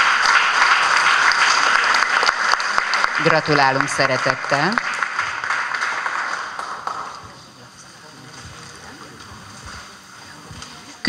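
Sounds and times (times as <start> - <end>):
audience applauding: 0.0 - 8.4.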